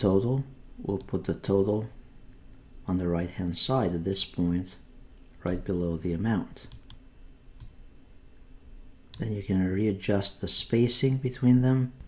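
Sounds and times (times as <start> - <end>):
computer mouse click: 6.6 - 7.0, 7.6 - 7.8.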